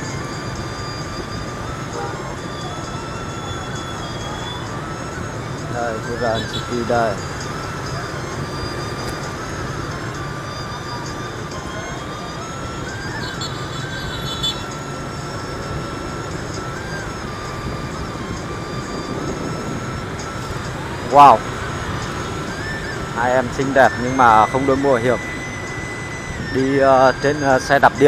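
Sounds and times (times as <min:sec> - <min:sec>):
motorbike engine and road noise: 0:00.0 - 0:28.0
thin whine: 0:00.0 - 0:28.0.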